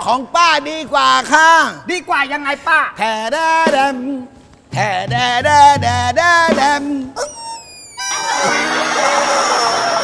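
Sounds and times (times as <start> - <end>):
rubber chicken toy squawking: 7.2 - 8.6.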